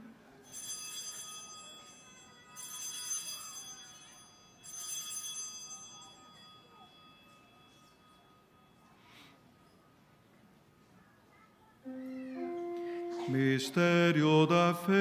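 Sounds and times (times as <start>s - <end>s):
altar bell ringing: 0.4s - 9.0s.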